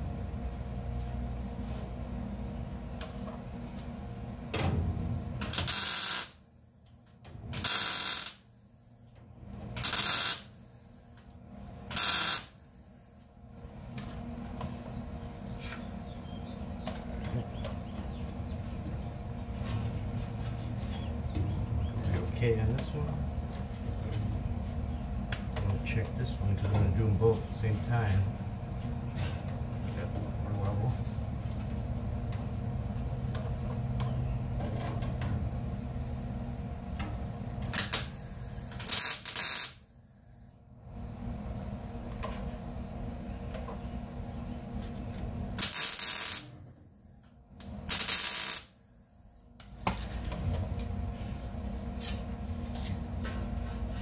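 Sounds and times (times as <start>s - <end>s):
low workshop sounds: 0.0s - 54.0s
welding bursts: 5.4s - 6.4s, 7.5s - 8.5s, 9.8s - 10.5s, 11.9s - 12.8s, 37.7s - 39.8s, 45.6s - 46.6s, 47.9s - 48.8s.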